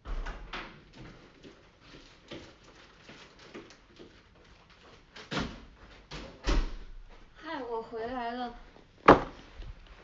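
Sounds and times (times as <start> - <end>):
door opening and shutting: 0.0 - 0.8, 5.3 - 6.8.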